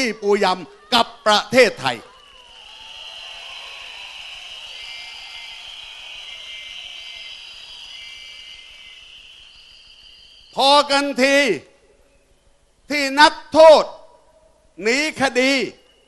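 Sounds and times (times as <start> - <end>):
crowd blowing whistles: 0.0 - 12.8, 15.6 - 16.0.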